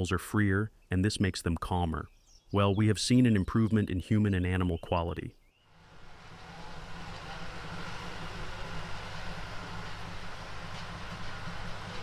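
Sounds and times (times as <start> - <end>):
even hiss: 5.7 - 12.0.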